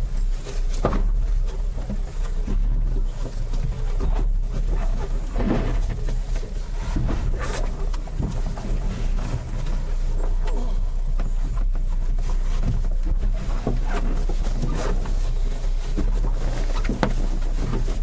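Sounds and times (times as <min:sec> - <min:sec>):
rustles and knocks: 0:00.0 - 0:18.0
steady low rumble: 0:00.0 - 0:18.0.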